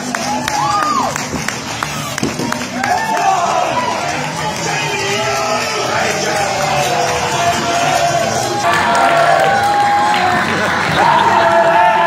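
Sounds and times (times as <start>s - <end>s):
crowd shouting and cheering: 0.0s - 12.0s
music playing in a hall: 0.0s - 12.0s.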